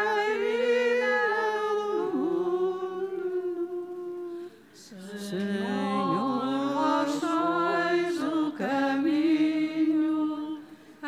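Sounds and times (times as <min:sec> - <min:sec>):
unaccompanied hymn singing: 0:00.0 - 0:11.0.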